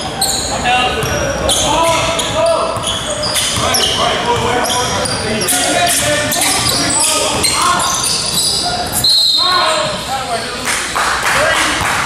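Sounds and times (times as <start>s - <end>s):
sneakers squeaking: 0.0s - 10.6s.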